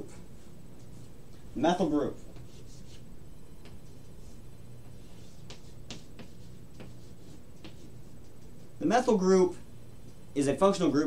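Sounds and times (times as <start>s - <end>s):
steady low background hum: 0.0s - 11.0s
chalk scratching on chalkboard: 2.4s - 3.1s, 5.0s - 8.8s.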